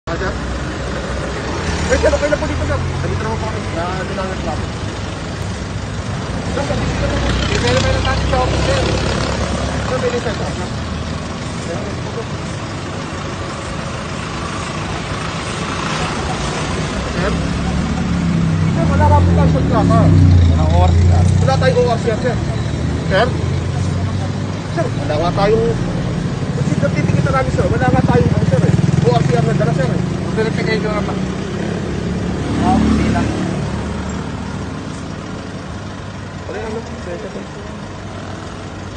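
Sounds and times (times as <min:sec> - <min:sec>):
indistinct talking: 0:00.1 - 0:38.9
vehicle engine idling: 0:00.1 - 0:38.9.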